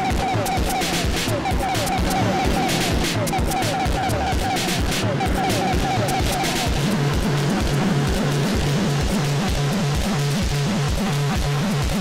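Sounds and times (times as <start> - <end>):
dense noisy electronic layer: 0.0 - 10.0
repeating bass line: 0.0 - 10.4
fast kick drum: 0.0 - 12.0.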